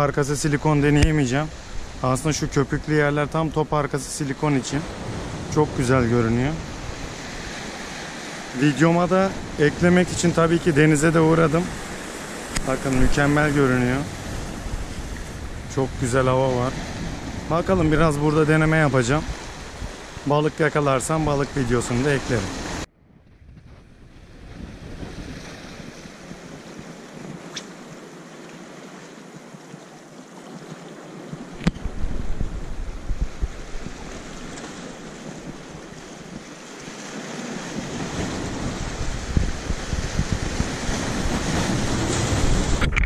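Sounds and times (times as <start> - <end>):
waves washing over rocks: 0.0 - 22.9, 24.6 - 43.0
wind buffeting microphone: 9.4 - 20.3, 22.6 - 28.0, 31.3 - 43.0.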